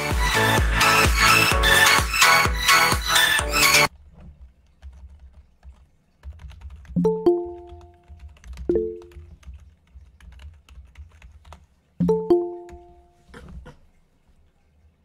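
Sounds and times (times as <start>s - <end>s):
soft typing clicks: 4.6s - 11.8s
two-note notification chimes: 12.0s - 13.1s.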